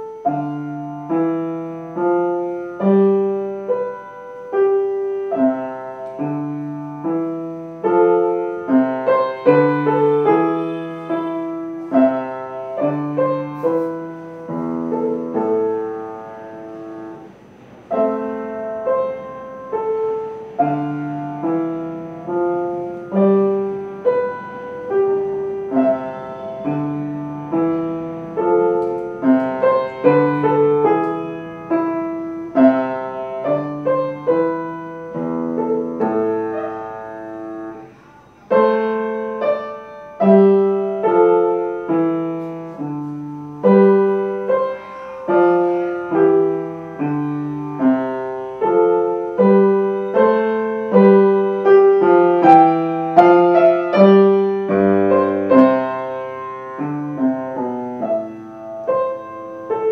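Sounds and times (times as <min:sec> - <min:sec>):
piano minuet: 0:00.0 - 0:59.9.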